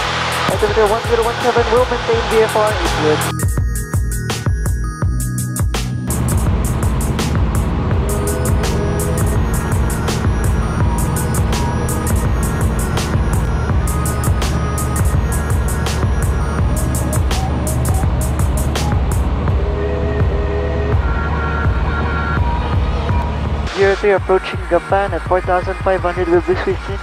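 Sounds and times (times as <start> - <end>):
aircraft piston engine drone: 0.0 - 3.3, 6.1 - 23.7
background music with steady beat: 0.0 - 27.0.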